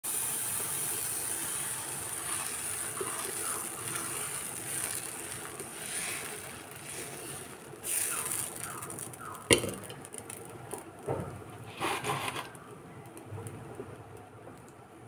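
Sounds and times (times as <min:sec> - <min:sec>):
batter sizzling on hot pan: 0:00.0 - 0:14.2.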